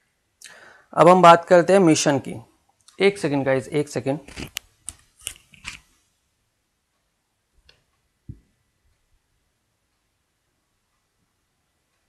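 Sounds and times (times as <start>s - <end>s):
person speaking: 0.4s - 2.4s, 3.0s - 4.6s
short clicks and rustles: 4.2s - 6.0s.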